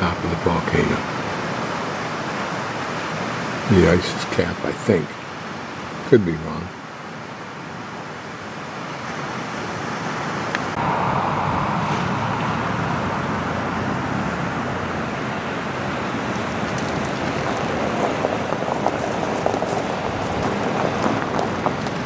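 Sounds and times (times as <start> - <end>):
outdoor rushing noise: 8.8 - 22.0.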